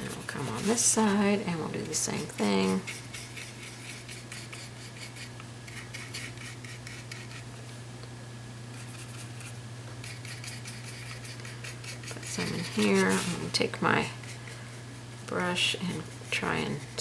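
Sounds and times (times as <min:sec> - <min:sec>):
paintbrush scratching and ticking: 0:00.0 - 0:07.5, 0:08.7 - 0:17.0
steady low hum: 0:00.0 - 0:17.0.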